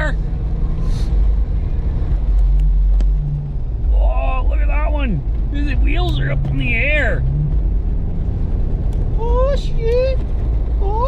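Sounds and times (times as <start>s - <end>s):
engine and tyre rumble: 0.0s - 11.0s.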